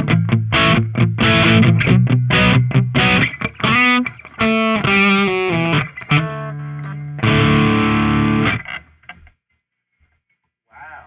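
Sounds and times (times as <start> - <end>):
distorted electric guitar chord: 0.0 - 8.7.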